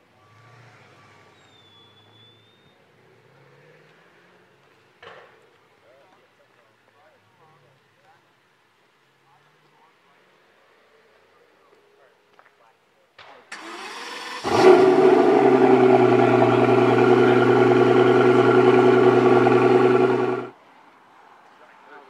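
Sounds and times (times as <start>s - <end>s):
car engine starting and idling: 13.5s - 20.5s
engine starter cranking: 13.5s - 20.5s.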